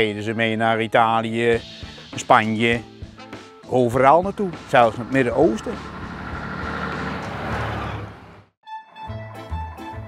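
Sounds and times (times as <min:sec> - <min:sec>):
diesel truck driving by: 0:03.8 - 0:08.6.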